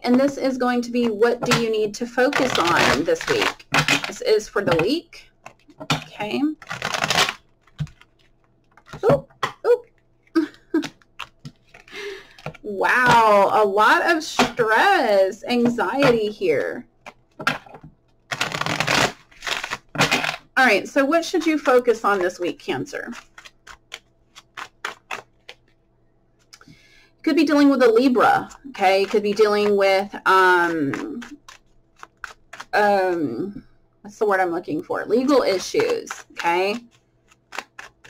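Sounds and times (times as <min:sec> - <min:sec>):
cards riffle-shuffled: 0:05.4 - 0:13.2, 0:17.0 - 0:20.4, 0:21.3 - 0:25.8, 0:28.4 - 0:32.8, 0:35.5 - 0:38.0.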